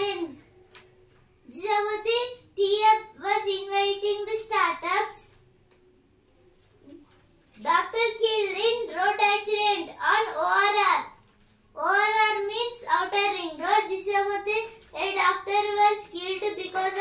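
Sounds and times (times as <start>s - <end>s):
boy speaking sing-song: 7.6s - 11.1s.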